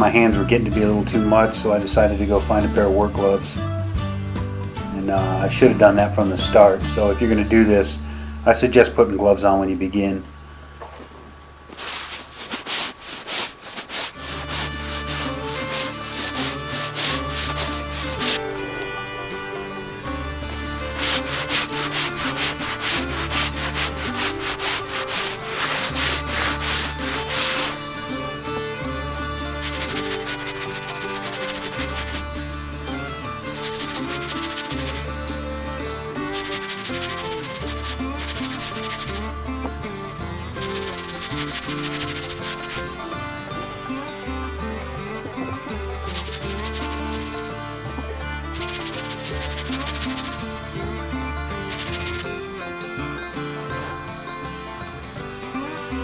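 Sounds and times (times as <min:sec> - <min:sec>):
background music with bass line: 0:00.0 - 0:09.2, 0:14.2 - 0:56.0
stiff brush scrubbing canvas: 0:11.7 - 0:19.2, 0:20.5 - 0:27.9, 0:29.5 - 0:32.3, 0:33.4 - 0:35.1, 0:36.2 - 0:39.4, 0:40.6 - 0:42.9, 0:45.9 - 0:47.6, 0:48.4 - 0:50.6, 0:51.6 - 0:52.4.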